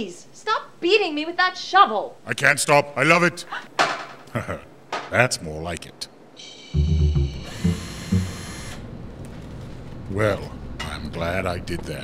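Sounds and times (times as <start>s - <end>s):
cordless drill whirring: 7.5s - 8.8s.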